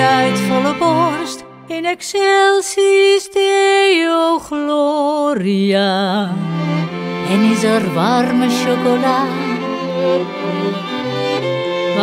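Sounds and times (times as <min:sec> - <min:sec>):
string quartet playing: 0:00.0 - 0:01.6, 0:06.4 - 0:12.0.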